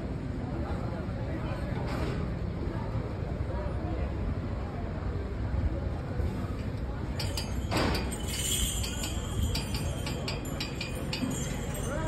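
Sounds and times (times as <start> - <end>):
low outdoor din: 0.0 - 12.0
sharp metallic clinks: 7.1 - 12.0.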